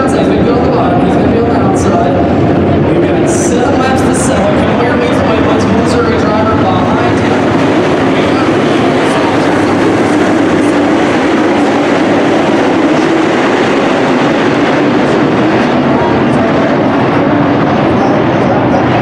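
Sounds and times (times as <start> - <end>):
race car engines roaring: 0.0 - 19.0.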